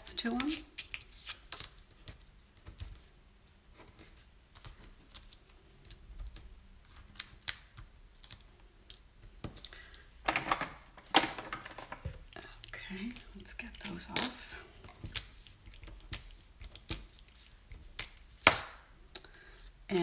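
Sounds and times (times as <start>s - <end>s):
cardstock pieces clicking and tapping: 4.5s - 12.3s.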